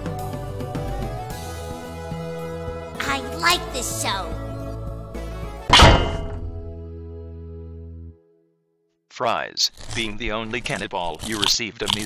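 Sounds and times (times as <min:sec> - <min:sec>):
background music with held notes: 0:00.0 - 0:08.5
loud ringing thunk: 0:05.7 - 0:06.6.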